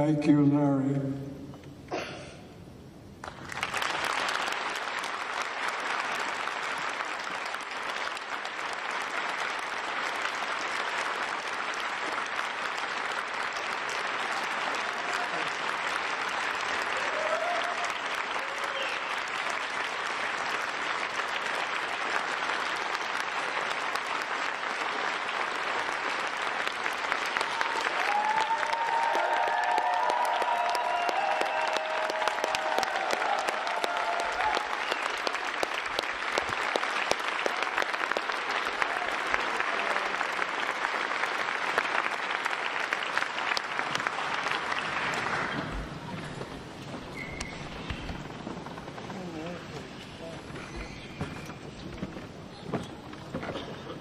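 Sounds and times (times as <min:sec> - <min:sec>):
audience applauding: 0:03.2 - 0:52.3.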